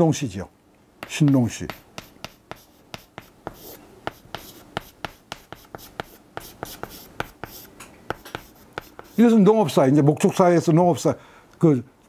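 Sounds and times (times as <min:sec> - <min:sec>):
chalk tapping and scraping on chalkboard: 0:01.0 - 0:09.4.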